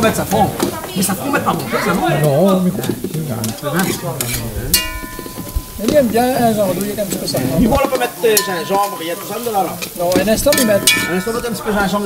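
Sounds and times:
sauce sizzling in a pot: 0:00.0 - 0:12.0
metal spoon stirring and scraping: 0:02.2 - 0:12.0
spoon knocking on ringing pot: 0:04.8 - 0:06.6, 0:07.8 - 0:11.6.

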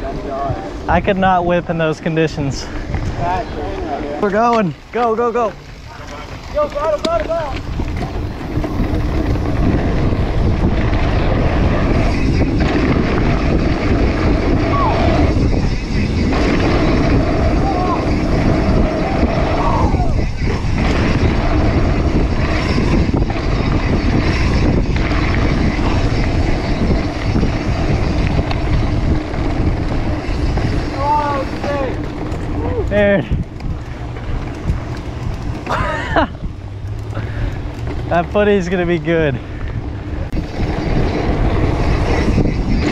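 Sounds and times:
wind on microphone: 0:00.0 - 0:04.4, 0:05.5 - 0:42.9
bike knocking and rattling: 0:00.0 - 0:42.9
bike tyres rumbling on dirt: 0:00.0 - 0:42.9.

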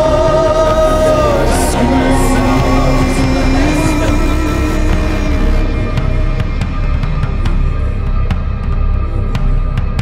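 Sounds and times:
band playing heavy bass and drums: 0:00.2 - 0:08.7.

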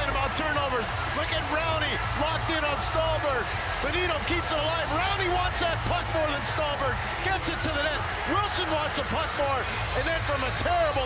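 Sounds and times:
sports commentary: 0:00.0 - 0:11.0.

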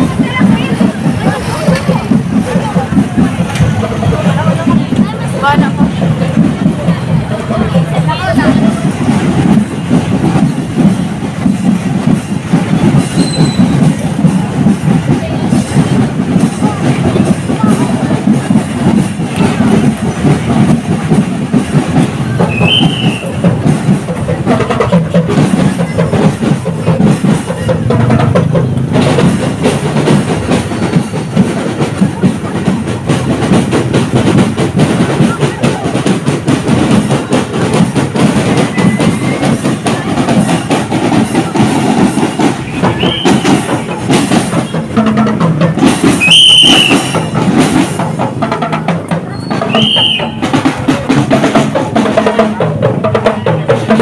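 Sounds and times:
crowd noise: 0:00.0 - 0:54.0
parade drums playing: 0:00.0 - 0:54.0
rumbling street noise: 0:00.0 - 0:54.0.

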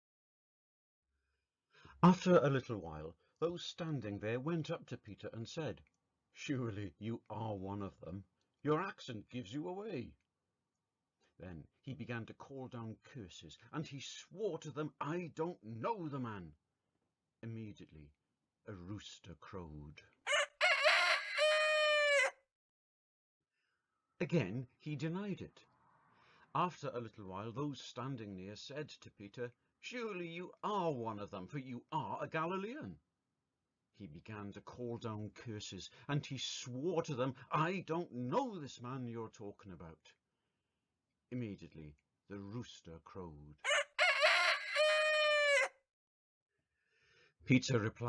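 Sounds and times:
rooster crowing: 0:20.3 - 0:22.4, 0:43.7 - 0:45.8.

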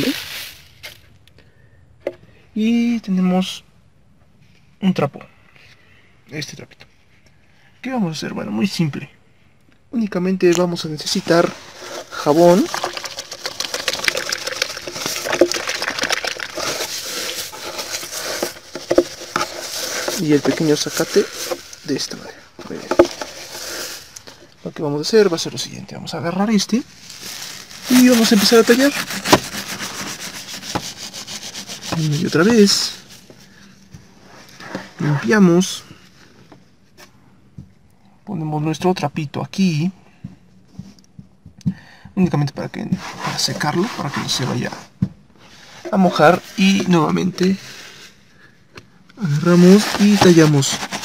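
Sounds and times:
wire scrubber crackling in soapy water: 0:11.6 - 0:22.0, 0:27.1 - 0:32.3.

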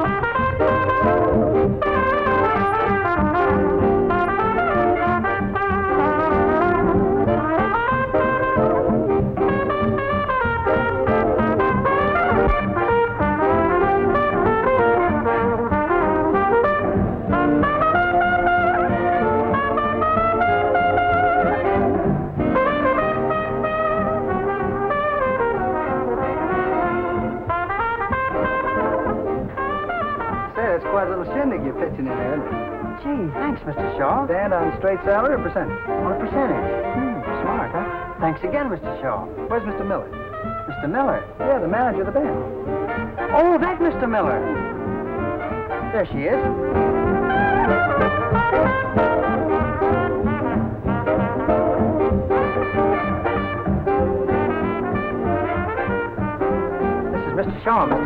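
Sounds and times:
lead trumpet melody: 0:00.0 - 0:58.0
swing band playing: 0:00.0 - 0:58.0.

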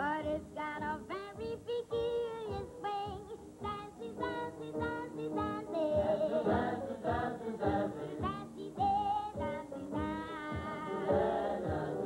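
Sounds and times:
band accompanying: 0:02.6 - 0:12.0
voices singing: 0:03.7 - 0:12.0
steady thumping beat: 0:05.9 - 0:12.0.

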